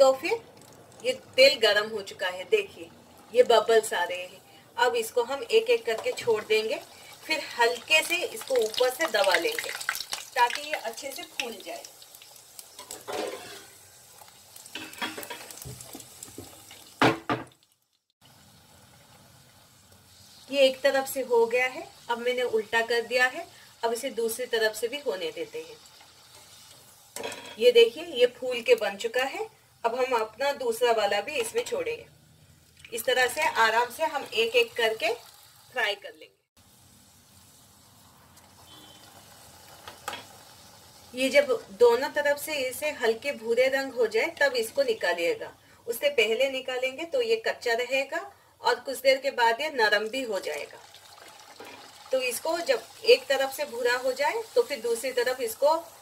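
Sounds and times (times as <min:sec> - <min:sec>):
dough sizzling in hot oil: 0:00.0 - 0:56.0.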